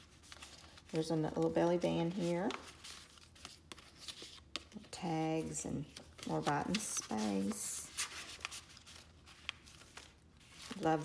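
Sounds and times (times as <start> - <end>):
paper pages turning: 0.0 - 11.0.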